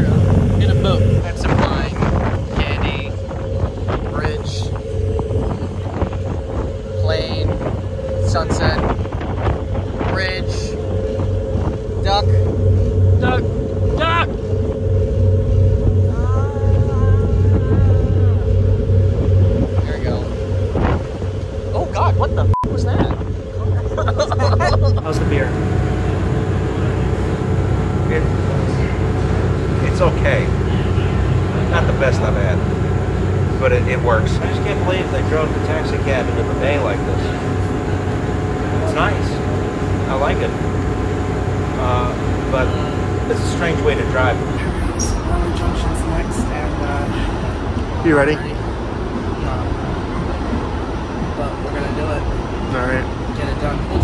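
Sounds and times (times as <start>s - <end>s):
indistinct voices: 0.0s - 9.0s, 9.8s - 21.0s, 21.6s - 50.6s
boat engine droning: 0.0s - 54.0s
multi-tone hum: 0.0s - 54.0s.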